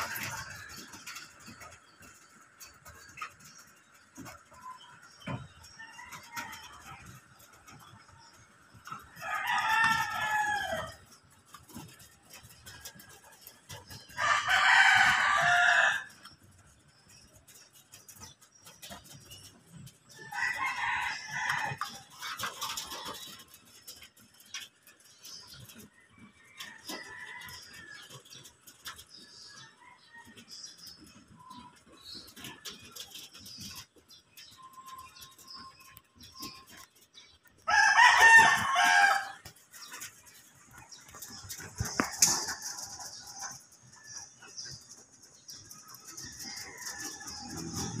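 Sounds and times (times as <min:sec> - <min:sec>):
pigeons pecking on metal roof: 0:00.0 - 0:48.0
rooster crowing: 0:09.2 - 0:11.0, 0:14.2 - 0:16.1, 0:20.2 - 0:21.9, 0:37.7 - 0:39.4.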